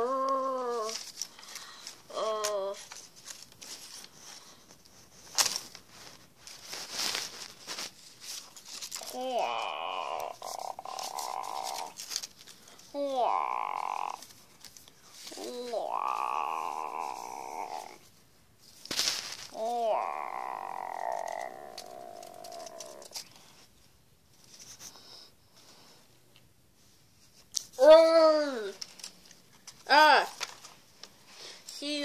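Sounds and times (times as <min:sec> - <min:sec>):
paper rustling and clicking: 0:00.2 - 0:16.4, 0:18.7 - 0:19.6, 0:20.6 - 0:23.6, 0:28.6 - 0:31.2
monster roars: 0:09.1 - 0:12.0, 0:13.2 - 0:14.2, 0:15.4 - 0:18.0, 0:19.6 - 0:23.1.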